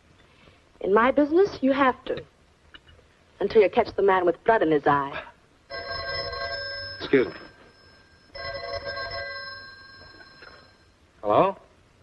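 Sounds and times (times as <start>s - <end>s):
telephone bell ringing: 5.7s - 11.0s.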